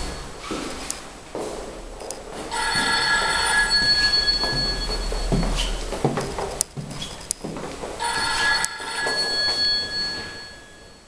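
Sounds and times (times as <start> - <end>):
bell-like ringing: 0.0 - 0.4, 2.5 - 7.3, 8.0 - 11.0.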